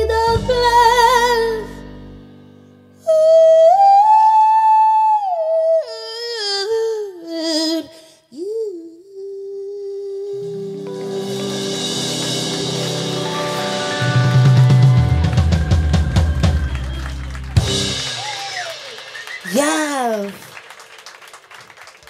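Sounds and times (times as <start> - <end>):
live band playing: 0.0 - 2.7, 10.4 - 20.7.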